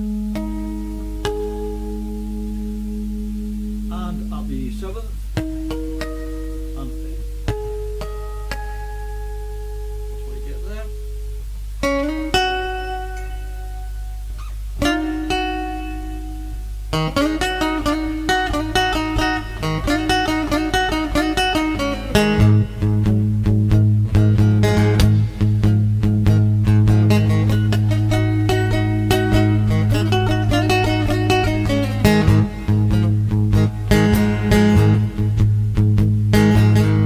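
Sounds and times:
electric box guitar playing: 0.0s - 37.0s
low hum: 0.0s - 37.0s.

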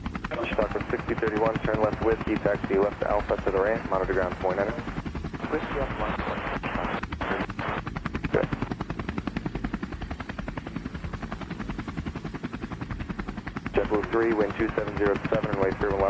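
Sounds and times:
air traffic control transmissions: 0.2s - 8.9s, 13.3s - 16.0s
pulsing radio static: 0.3s - 8.8s, 13.6s - 16.0s.

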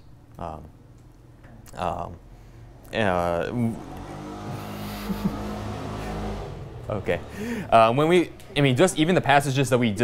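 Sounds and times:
small engine droning: 3.4s - 8.4s.

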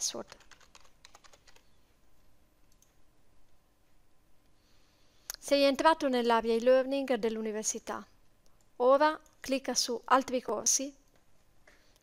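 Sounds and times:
typing on computer keyboard: 0.2s - 1.7s.

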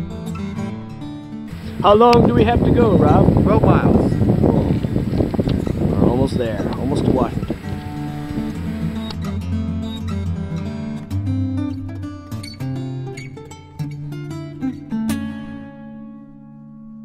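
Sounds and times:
acoustic guitar plucked and strummed: 0.0s - 17.0s.

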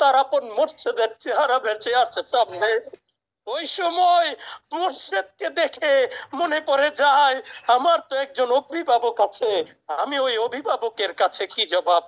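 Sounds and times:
man preaching into microphone: 0.0s - 12.0s.

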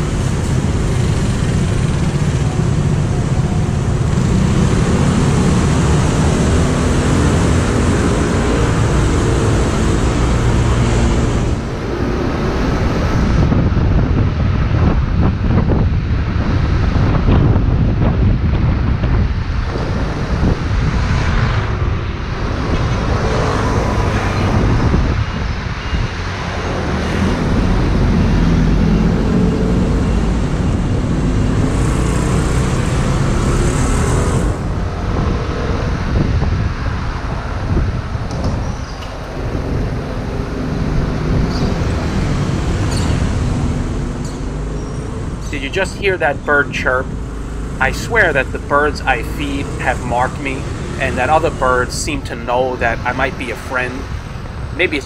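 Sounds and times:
surrounding traffic: 0.0s - 55.0s
wind buffeting microphone: 0.0s - 55.0s.

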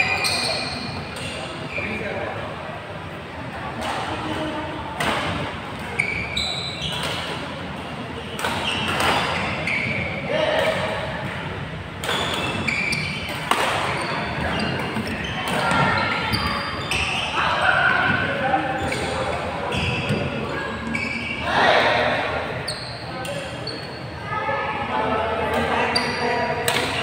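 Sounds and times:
sneakers squeaking on court: 0.0s - 2.0s, 5.8s - 7.5s, 8.2s - 10.2s, 12.0s - 21.5s, 22.6s - 24.2s
players' voices: 0.0s - 27.0s
sports hall din: 0.0s - 27.0s.

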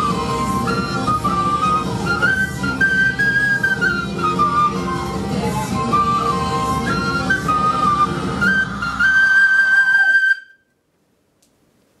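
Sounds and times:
tin whistle melody: 0.0s - 10.7s.

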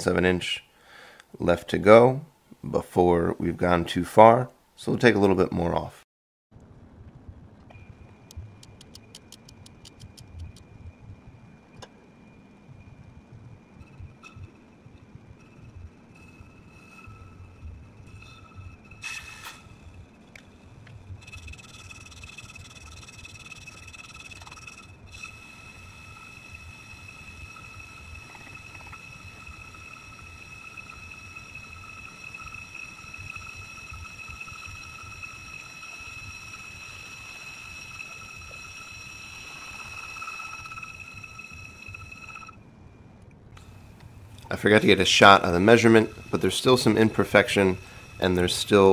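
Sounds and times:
low motor hum: 6.6s - 19.0s, 19.6s - 48.9s
high-pitched ringing of brake lathe: 15.4s - 20.1s, 21.2s - 42.6s, 44.6s - 48.9s.

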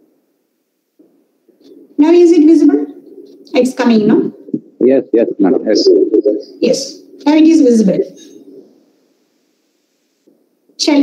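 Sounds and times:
voice over video call: 1.7s - 8.3s.

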